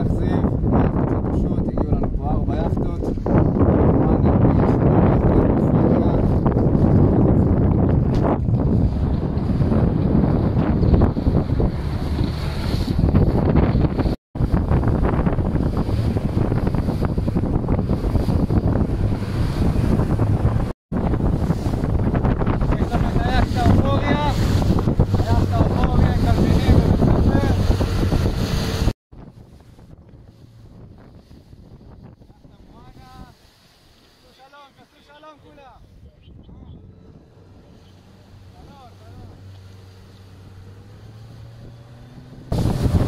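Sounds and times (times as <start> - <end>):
wind buffeting microphone: 0.0 - 34.0, 35.4 - 43.0
sea water rushing past boat: 0.0 - 36.0, 36.9 - 43.0.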